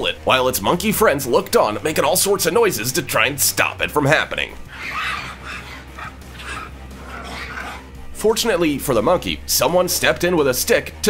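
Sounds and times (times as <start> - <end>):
dogs barking: 4.5 - 8.0.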